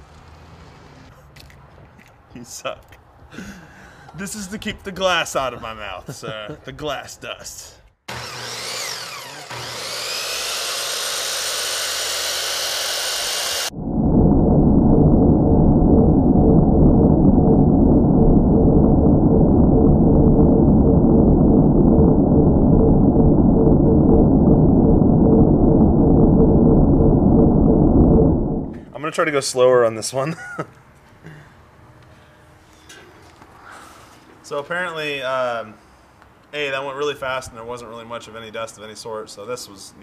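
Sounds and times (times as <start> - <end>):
circular saw spinning up: 8.1 - 13.7.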